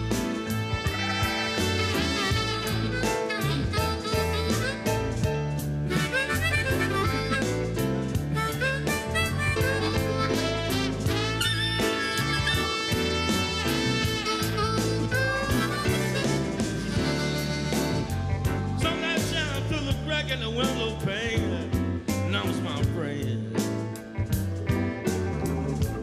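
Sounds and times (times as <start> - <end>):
trumpet solo: 0.0 - 20.3
harmonica: 0.0 - 22.7
bass and drums: 0.0 - 26.0.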